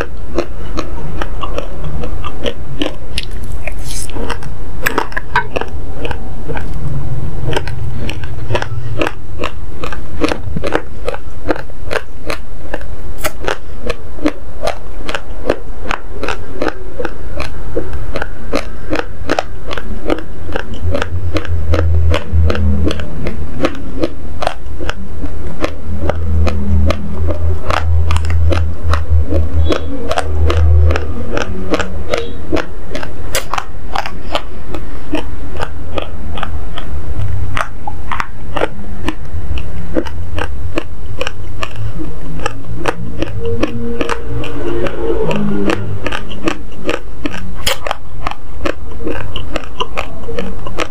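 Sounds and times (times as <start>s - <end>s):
chewing dry rice crunches: 0.0s - 6.8s, 7.4s - 50.9s
deep low rumble: 0.6s - 50.9s.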